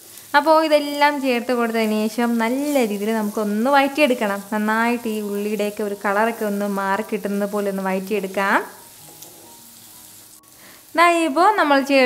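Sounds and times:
food sizzling in hot oil: 0.0s - 12.0s
spatula stirring in pot: 8.8s - 10.2s.

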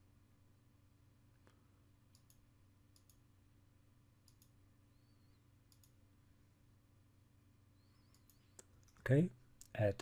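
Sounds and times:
low steady hum: 0.0s - 10.0s
mouse button clicks: 8.0s - 9.0s.

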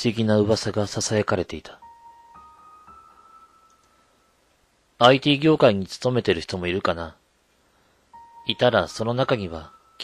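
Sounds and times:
high chime note: 8.2s - 10.0s.

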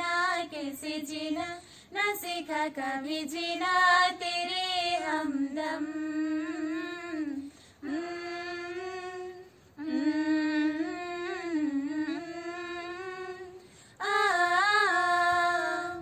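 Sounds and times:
girls humming a melody: 4.4s - 16.0s.

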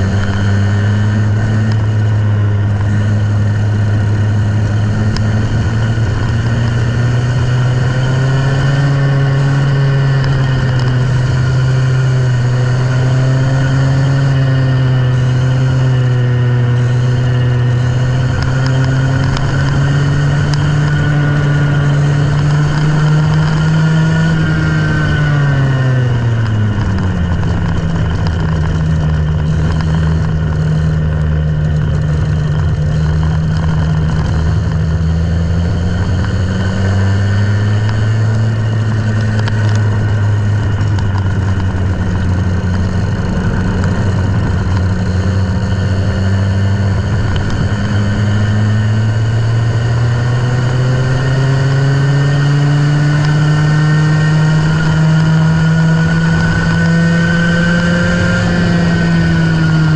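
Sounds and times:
go-kart engine running: 0.0s - 59.9s.

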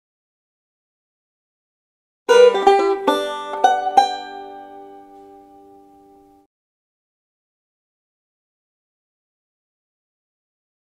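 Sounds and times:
banjo plucked notes: 2.3s - 6.5s.

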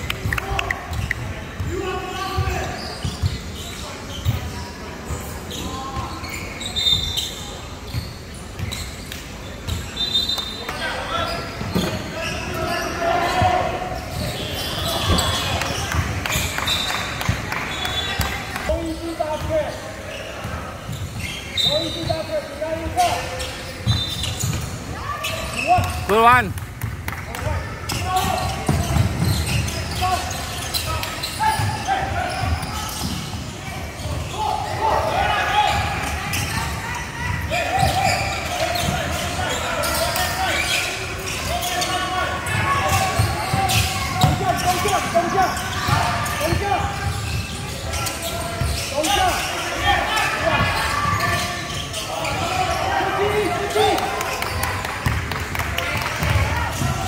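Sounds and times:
sharp rising shoe squeak: 5.5s - 9.0s.

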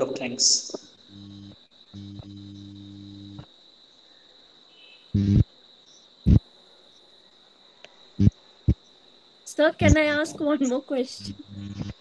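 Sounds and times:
high-pitched insect-like trill: 0.2s - 12.0s
low electrical hum: 0.7s - 3.4s, 5.2s - 5.4s, 9.5s - 12.0s.

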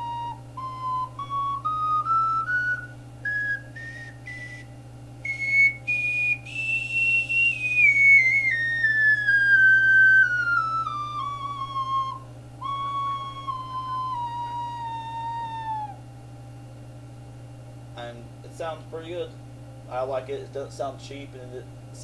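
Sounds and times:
ocarina playing a scale: 0.0s - 16.0s.

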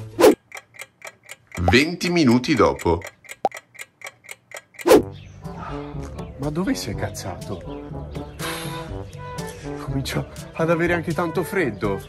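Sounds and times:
clock ticking: 0.0s - 5.2s
background music: 4.8s - 12.0s.

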